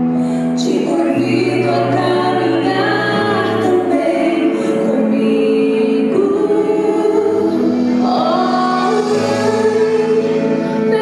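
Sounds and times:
choir singing slow religious song: 0.6 - 11.0.

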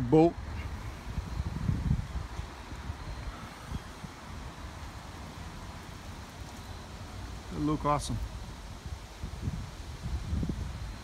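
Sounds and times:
wind buffeting microphone: 0.0 - 6.4, 8.1 - 11.0.

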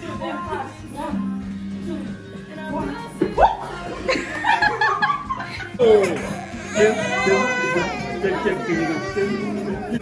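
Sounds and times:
background music: 0.0 - 10.0
people laughing: 3.4 - 7.4.

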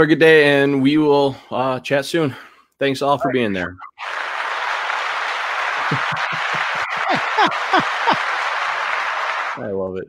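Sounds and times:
applause: 3.9 - 9.7.

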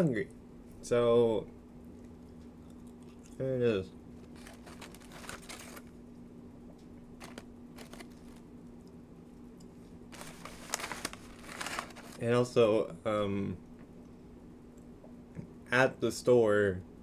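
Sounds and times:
paper crinkling and rustling: 4.2 - 5.9, 7.2 - 8.4, 10.1 - 12.3.

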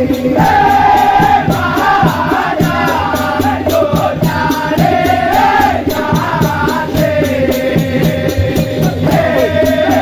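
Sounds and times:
men singing in chorus: 0.0 - 10.0
steady percussive beat: 0.0 - 10.0.

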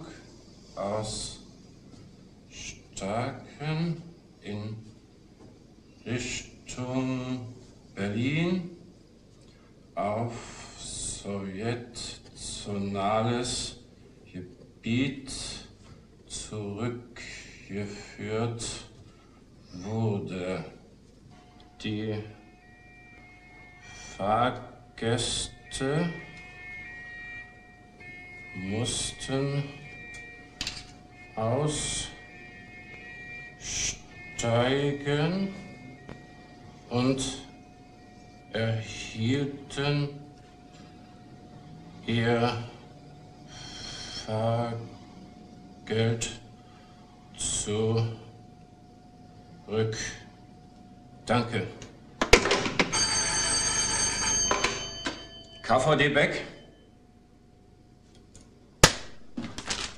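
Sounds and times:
telephone bell ringing: 21.3 - 24.2, 25.9 - 42.0, 52.8 - 56.9
faint high tone: 21.4 - 45.8
man dictating: 23.8 - 26.4, 28.5 - 30.0, 31.4 - 32.3, 33.5 - 35.8.

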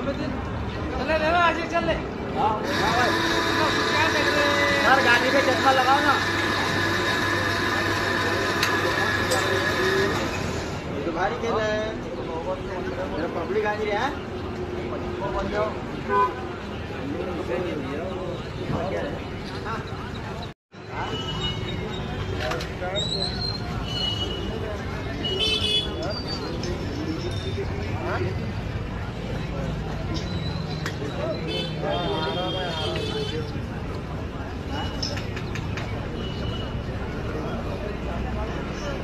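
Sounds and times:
traffic hum: 0.0 - 39.0.

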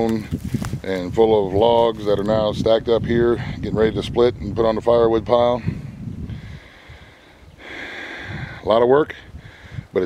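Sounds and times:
low rumble of wind or handling: 0.0 - 10.0
man breathing in: 6.3 - 8.6, 9.3 - 9.9.

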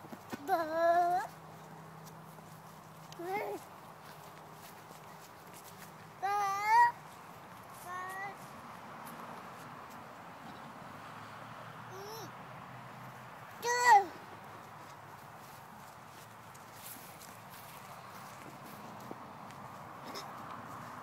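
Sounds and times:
toddler babbling: 0.4 - 1.3, 3.2 - 3.7, 6.2 - 7.0, 7.8 - 8.4, 11.9 - 12.3, 13.6 - 14.2.

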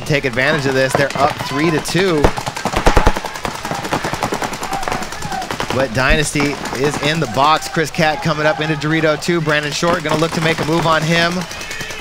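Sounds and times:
paintball markers firing: 0.0 - 12.0.

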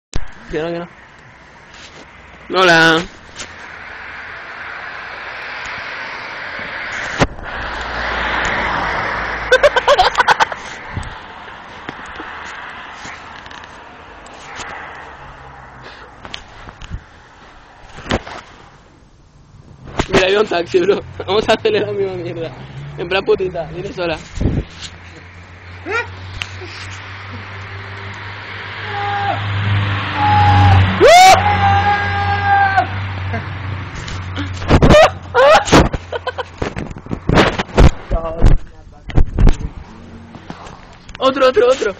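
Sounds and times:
car driving past: 3.5 - 9.6, 10.7 - 16.2, 20.8 - 34.5, 39.7 - 40.8
bursts of laughter: 9.4 - 10.7, 34.4 - 36.6
person yelling: 25.8 - 26.2, 28.8 - 29.5, 30.2 - 33.0.

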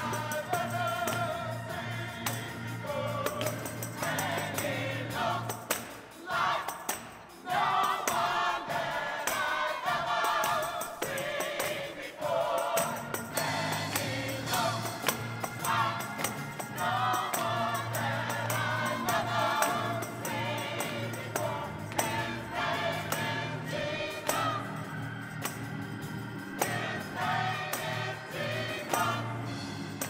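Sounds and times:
organ playing: 0.0 - 6.5, 7.5 - 30.0
congregation singing gospel song: 0.0 - 30.0
sharp percussive hits: 3.3 - 8.5, 12.6 - 30.0.

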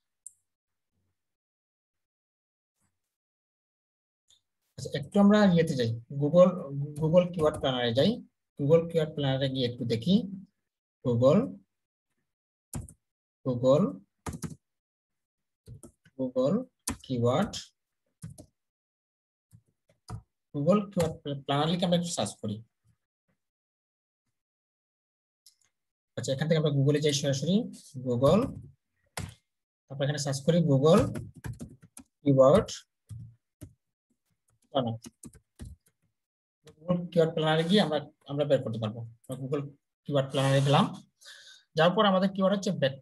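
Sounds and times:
person speaking: 4.8 - 10.4, 16.2 - 17.6, 20.6 - 22.6, 26.2 - 28.6, 30.0 - 31.6, 36.7 - 41.0
keyboard typing: 12.7 - 13.0, 14.2 - 14.6, 18.2 - 18.5, 30.9 - 32.1, 34.9 - 36.0.

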